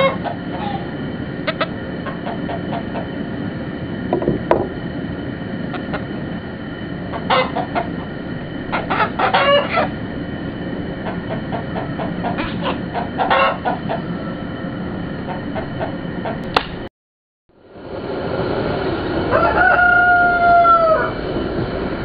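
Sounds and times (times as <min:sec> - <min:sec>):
chickens clucking: 0:00.0 - 0:03.2, 0:07.1 - 0:10.0, 0:10.9 - 0:14.4
outdoor background noise: 0:00.0 - 0:16.9, 0:17.5 - 0:22.0.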